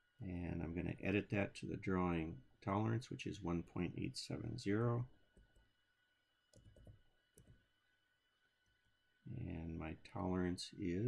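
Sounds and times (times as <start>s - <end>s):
faint keyboard keystrokes: 6.5s - 7.6s.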